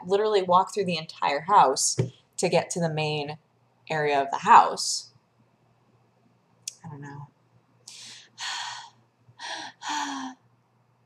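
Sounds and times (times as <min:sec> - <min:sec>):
woman breathing and sighing: 0:07.9 - 0:10.4.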